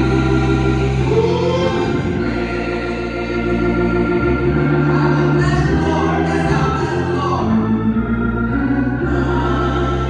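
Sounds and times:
women singing gospel: 0.0s - 7.8s, 8.8s - 10.0s
organ chords: 0.0s - 10.0s.

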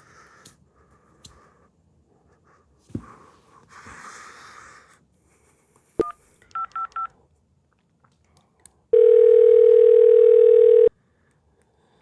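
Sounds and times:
telephone ringback tone: 9.0s - 10.9s.

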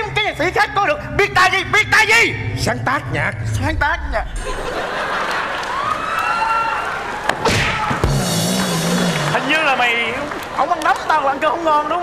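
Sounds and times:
studio audience laughing: 4.3s - 6.1s
studio audience clapping: 5.0s - 12.0s.

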